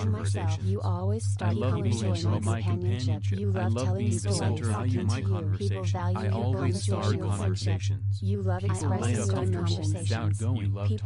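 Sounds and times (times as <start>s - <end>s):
overlapping voices reciting: 0.0s - 0.7s, 1.4s - 7.6s, 8.7s - 10.4s
pulsing low tone: 0.0s - 11.0s.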